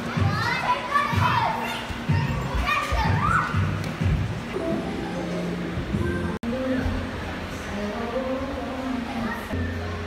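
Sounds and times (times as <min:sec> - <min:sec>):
children calling and squealing: 0:00.0 - 0:03.8
background music with steady beat: 0:00.0 - 0:10.0.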